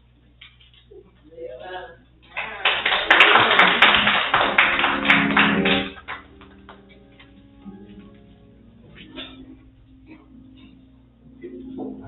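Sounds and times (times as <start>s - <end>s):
soft held organ notes: 4.1s - 12.0s.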